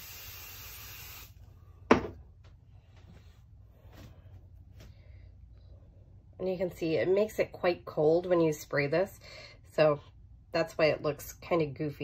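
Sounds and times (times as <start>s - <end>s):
aerosol spray hissing: 0.0s - 1.4s.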